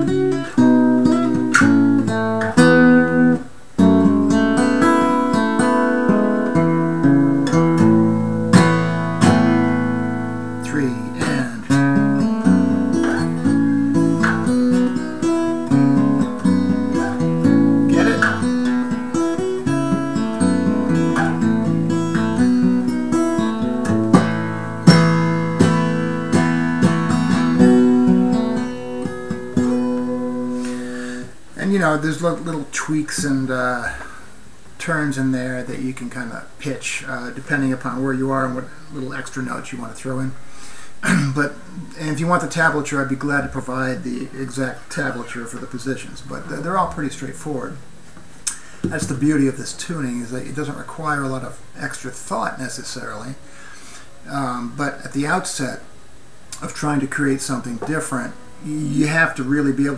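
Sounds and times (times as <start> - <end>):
acoustic guitar strummed and picked: 0.0 - 59.9.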